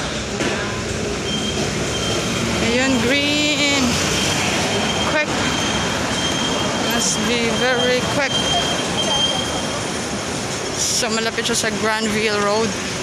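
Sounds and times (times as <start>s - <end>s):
city street traffic: 0.0s - 13.0s.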